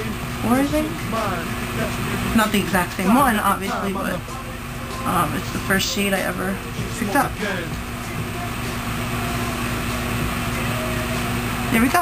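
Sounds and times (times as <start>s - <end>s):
low rumble: 0.0s - 10.8s
steady low hum: 0.0s - 12.0s.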